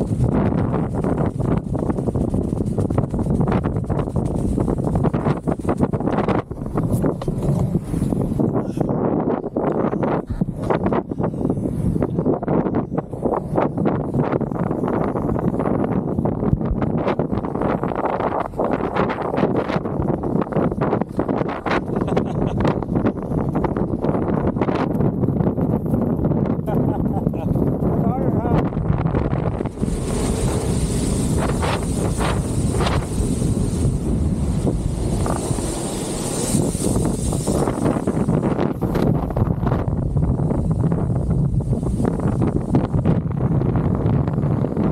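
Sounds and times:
buggy wheels clicking and rattling: 0:00.0 - 0:08.1
kite buggy rolling on sand: 0:00.0 - 0:44.9
wind buffeting microphone: 0:00.0 - 0:44.9.

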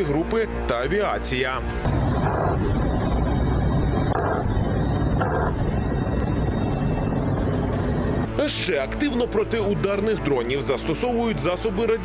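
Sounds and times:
aircraft engine and airflow noise: 0:01.6 - 0:08.3.

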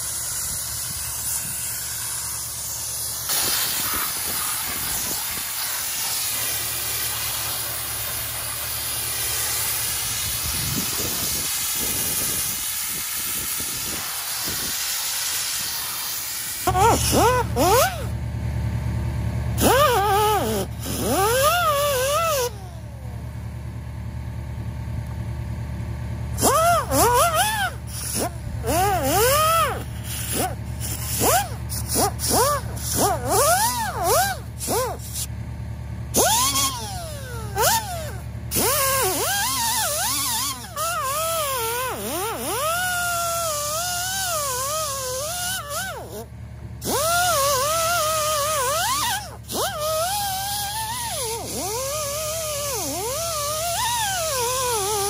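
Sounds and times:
air tool whining on metal: 0:00.0 - 0:18.7, 0:19.4 - 0:23.5, 0:26.2 - 0:35.4, 0:36.1 - 0:55.0.

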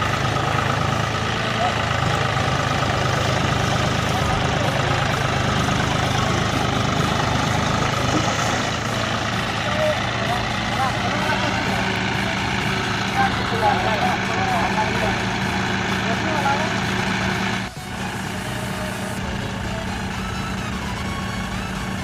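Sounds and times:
tractor diesel engine running: 0:00.0 - 0:22.0
men calling out: 0:00.8 - 0:19.9.

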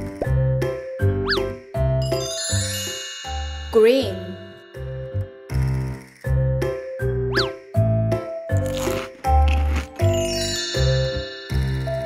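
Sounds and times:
bouncy children's music: 0:00.0 - 0:05.6, 0:09.2 - 0:12.0
sparkling chime jingle: 0:02.0 - 0:05.4, 0:10.1 - 0:12.0.

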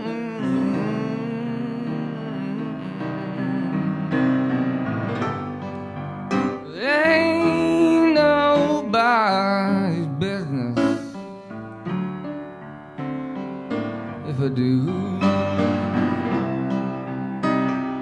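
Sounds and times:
piano playing slow blues: 0:00.0 - 0:18.0
sliding lead melody: 0:00.0 - 0:18.0.

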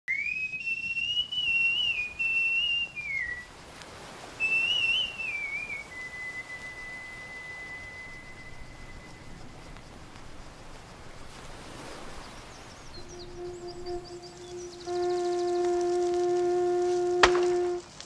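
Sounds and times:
high whistled tune: 0:00.1 - 0:03.5, 0:04.3 - 0:09.9, 0:12.0 - 0:17.9.

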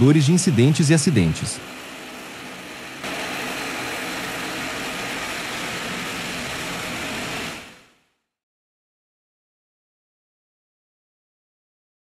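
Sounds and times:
turboprop engines running: 0:00.0 - 0:08.2.

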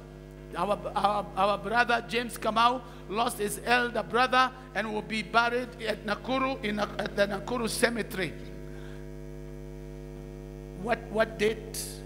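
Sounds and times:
electrical mains hum: 0:00.0 - 0:12.0
man speaking: 0:00.5 - 0:08.5, 0:10.8 - 0:12.0.

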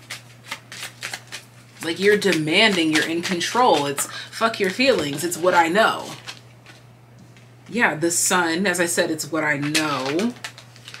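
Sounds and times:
cards being shuffled: 0:00.0 - 0:06.8, 0:09.6 - 0:11.0.

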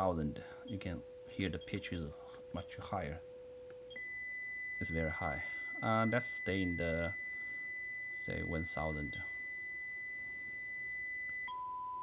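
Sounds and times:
steady high test tone: 0:03.8 - 0:12.0.

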